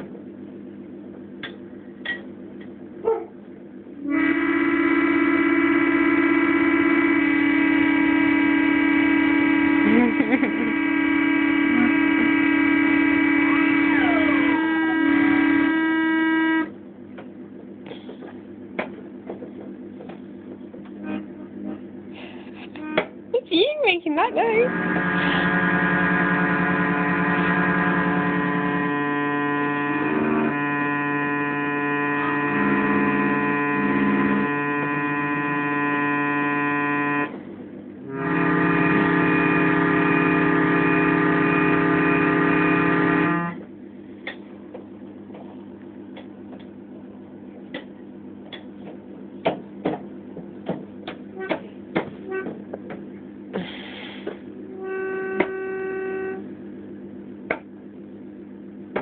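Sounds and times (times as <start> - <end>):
toy organ chords: 4.1 - 16.7, 24.6 - 37.4, 38.0 - 43.6.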